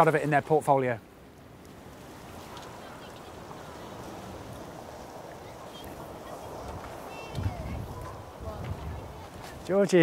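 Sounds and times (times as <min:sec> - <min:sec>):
faint distant voices: 0:02.3 - 0:10.0.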